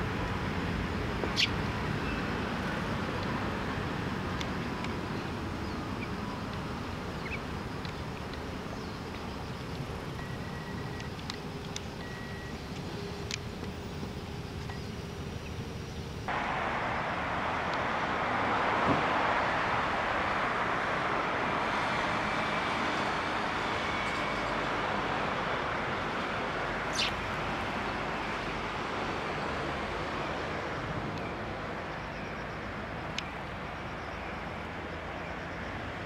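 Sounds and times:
outdoor background hiss: 0:00.0 - 0:36.0.

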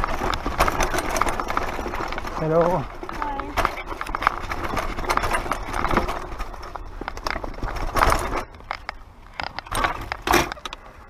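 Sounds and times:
tyres crunching on loose stones: 0:00.0 - 0:10.9
bike rattling: 0:00.0 - 0:11.0.

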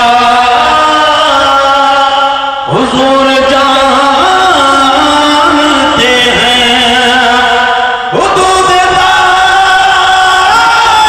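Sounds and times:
man chanting devotional poem: 0:00.0 - 0:11.0.

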